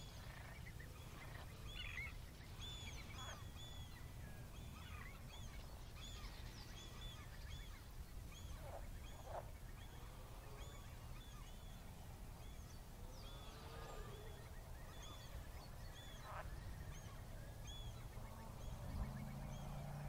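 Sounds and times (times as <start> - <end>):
birds chirping: 0.0 - 20.0
lower bird calls: 0.0 - 20.0.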